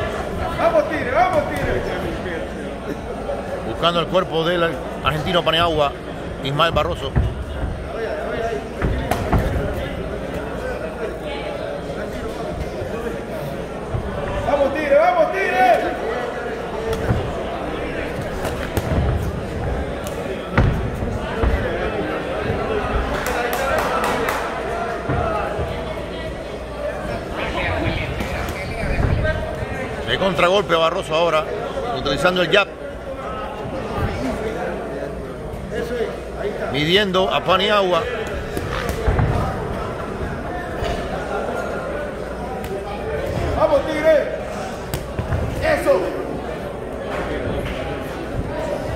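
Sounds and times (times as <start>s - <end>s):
crowd chatter and shouts: 0.0s - 48.9s
punches thudding: 8.7s - 10.5s, 16.8s - 22.8s.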